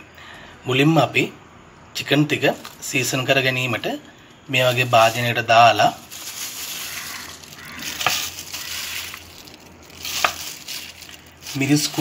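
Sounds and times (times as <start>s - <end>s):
chicken sizzling in hot oil: 6.3s - 12.0s.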